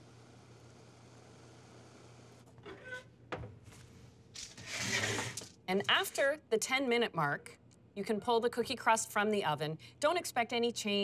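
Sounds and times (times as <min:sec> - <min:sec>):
low kitchen hum: 0:00.0 - 0:08.7
baking tray sliding out of oven: 0:04.6 - 0:05.4.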